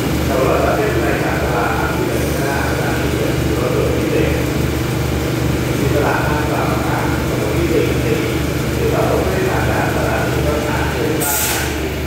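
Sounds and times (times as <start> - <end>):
diesel train engines idling: 0.0 - 12.0
people's voices: 0.3 - 4.6, 5.7 - 12.0.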